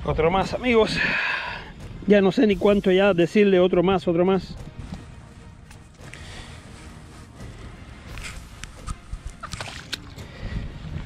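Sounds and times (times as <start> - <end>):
fish handling scuffs and clicks: 4.6 - 10.3
wind rumble on microphone: 10.2 - 11.0.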